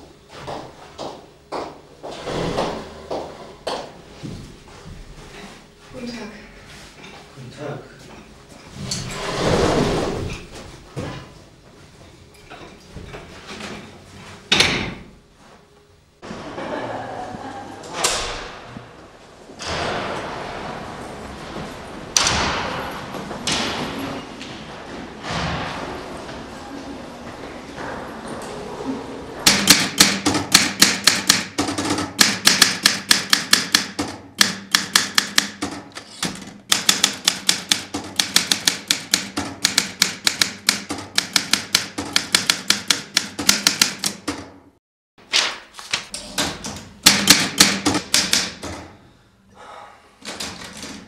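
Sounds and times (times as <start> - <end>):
typewriter typing fast: 29.5 - 44.4, 47.0 - 48.8.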